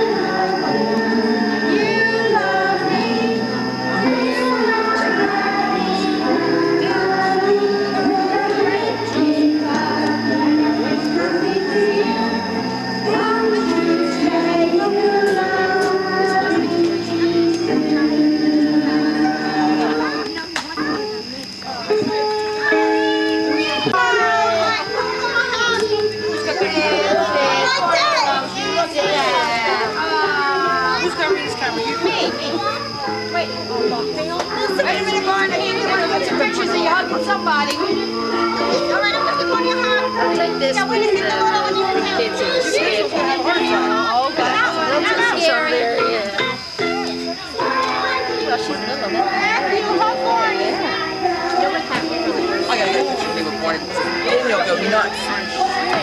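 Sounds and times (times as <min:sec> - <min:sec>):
adult voices: 0:00.0 - 0:56.0
children chattering and shouting: 0:00.0 - 0:56.0
thin steady high tone: 0:00.0 - 0:56.0.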